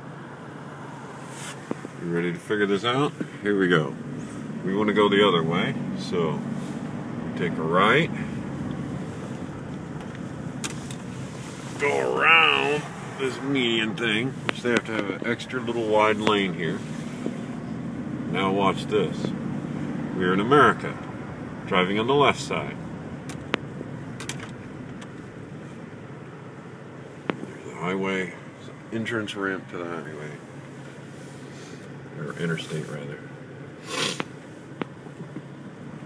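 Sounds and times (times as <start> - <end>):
car road and engine noise: 0.0 - 36.0.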